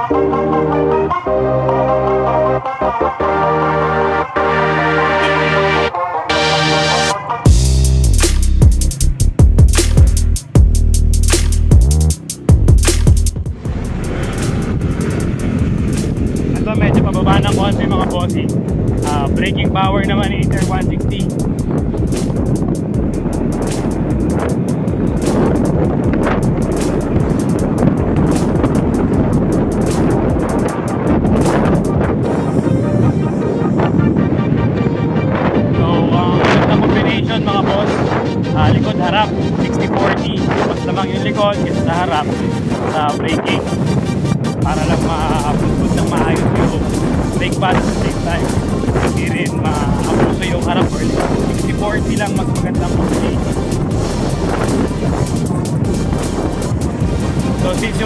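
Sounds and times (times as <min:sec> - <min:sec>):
wind on microphone: 0:07.4 - 0:58.0.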